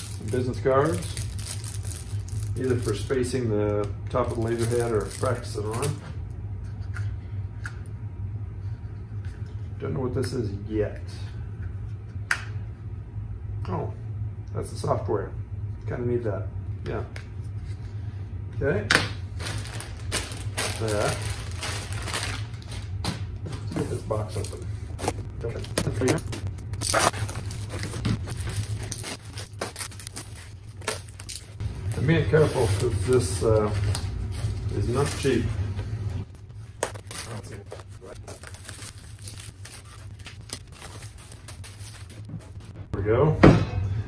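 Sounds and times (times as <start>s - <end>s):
packaging rustling: 0.0s - 3.1s, 19.3s - 35.5s, 36.7s - 42.5s
plastic bag crinkling: 0.0s - 3.2s, 19.3s - 23.1s, 25.4s - 35.4s, 36.9s - 42.2s
steady low hum: 0.0s - 44.0s.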